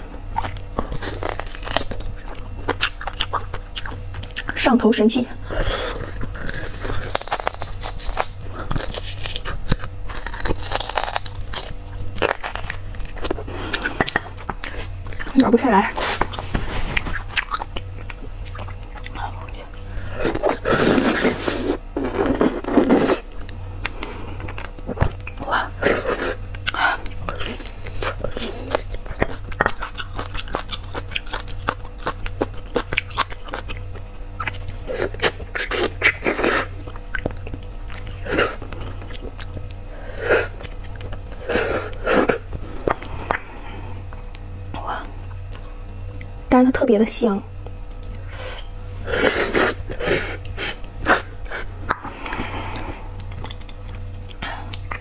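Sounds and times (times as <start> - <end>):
close chewing: 0.0 - 4.8, 5.4 - 44.7, 47.5 - 55.0.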